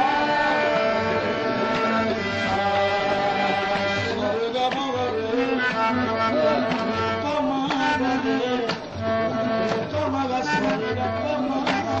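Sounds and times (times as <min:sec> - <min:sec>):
harmonium notes: 0:00.0 - 0:12.0.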